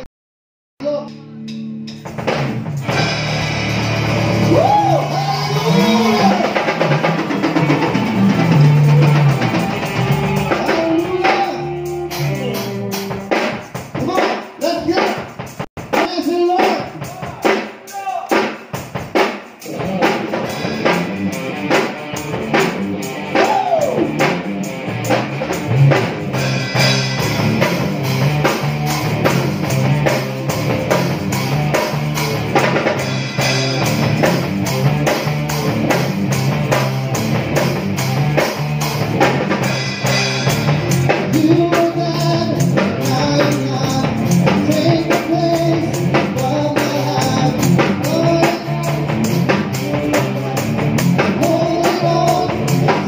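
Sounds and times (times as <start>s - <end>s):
electric guitars: 0.8s - 16.1s, 18.7s - 53.0s
drum kit beat: 0.8s - 53.0s.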